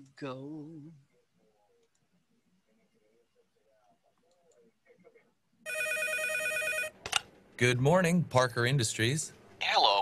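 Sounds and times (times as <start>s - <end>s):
electronic telephone ringing: 5.7s - 7.0s.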